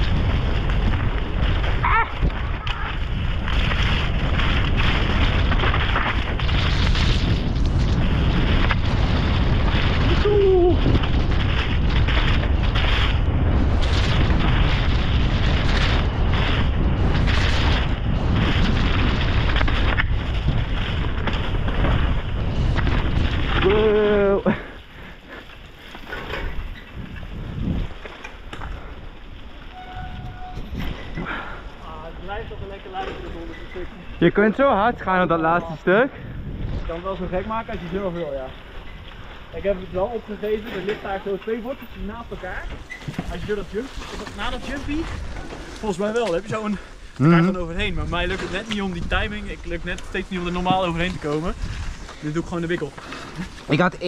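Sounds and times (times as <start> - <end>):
bike rattling over rough ground: 0.0 - 54.0
wind buffeting microphone: 0.0 - 54.0.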